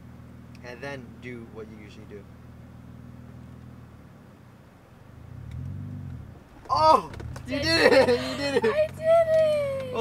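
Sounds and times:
car engine labouring at low revs: 0.0 - 10.0.

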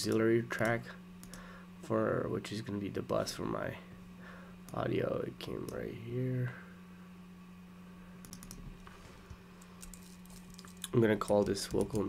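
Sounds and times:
steady low hum: 0.0 - 12.0
computer keyboard clicks: 8.2 - 8.6, 9.8 - 12.0.

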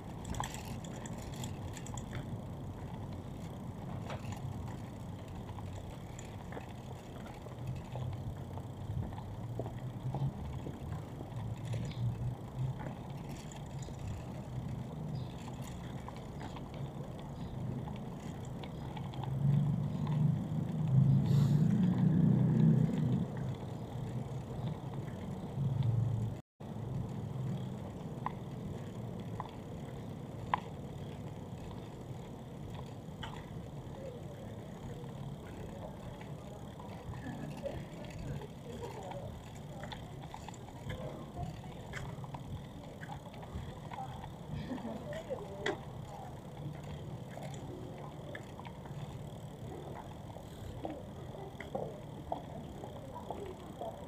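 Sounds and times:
faint voices of passers-by: 0.0 - 54.0
low rumble of traffic: 0.0 - 54.0
vehicle passing: 19.0 - 29.0.

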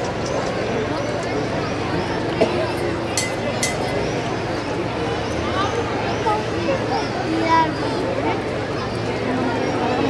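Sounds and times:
crowd chatter: 0.0 - 10.0
high clinks: 3.2 - 4.0.

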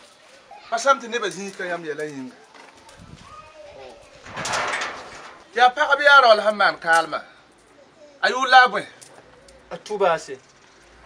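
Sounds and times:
bird cooing: 9.2 - 9.8.

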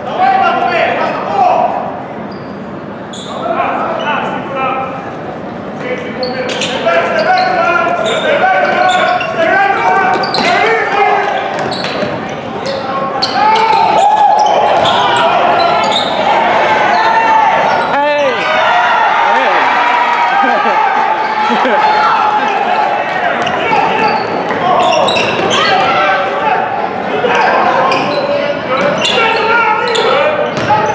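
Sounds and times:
voices in gym: 0.0 - 30.9
sneakers squeaking on floor: 2.2 - 3.4, 6.2 - 16.3, 23.3 - 25.9, 27.3 - 30.9
basketball bouncing on court: 11.5 - 12.2, 30.5 - 30.9.

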